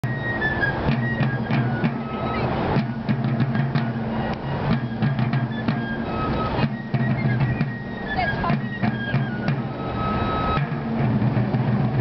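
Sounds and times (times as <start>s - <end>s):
field drums beating: 0.0s - 12.0s.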